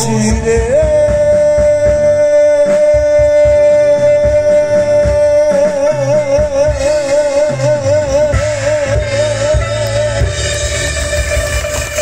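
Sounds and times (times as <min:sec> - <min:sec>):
live pop band playing: 0:00.0 - 0:12.0.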